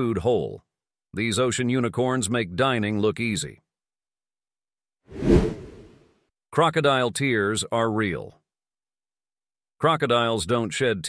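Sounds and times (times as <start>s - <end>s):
whoosh transition effect: 5.1s - 5.9s.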